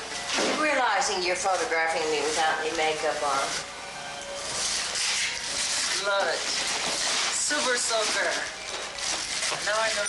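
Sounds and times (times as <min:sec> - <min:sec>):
wrapping paper tearing and rustling: 0:04.4 - 0:10.0.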